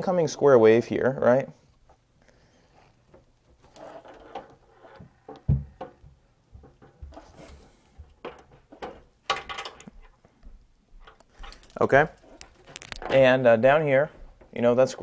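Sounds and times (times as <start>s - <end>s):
soft knocks and rustles: 3.0s - 13.3s.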